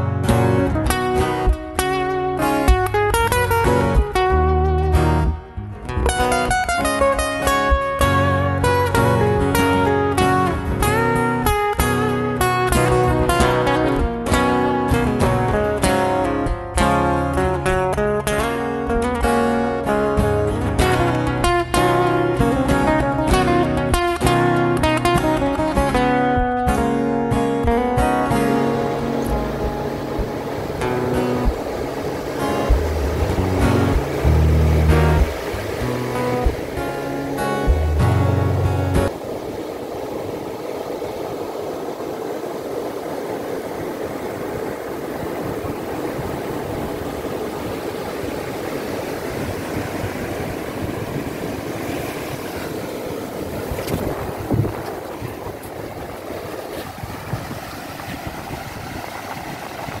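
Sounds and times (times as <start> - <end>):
acoustic guitar music: 0.0 - 60.0
ocean surf on a beach: 0.0 - 60.0.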